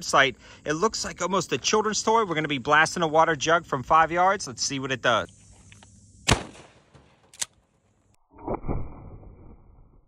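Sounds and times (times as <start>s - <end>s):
muffled gunshot and impact: 6.2s - 7.4s
shotgun crack: 6.2s - 7.5s.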